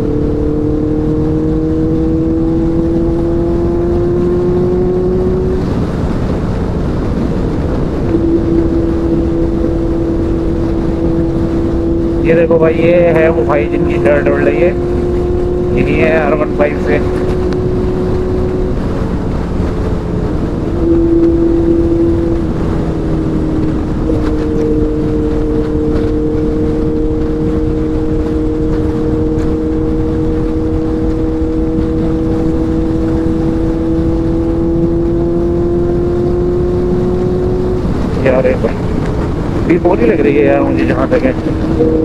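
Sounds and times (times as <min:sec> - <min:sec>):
motorcycle engine cruising: 0:00.0 - 0:42.0
wind noise on microphone: 0:00.0 - 0:42.0.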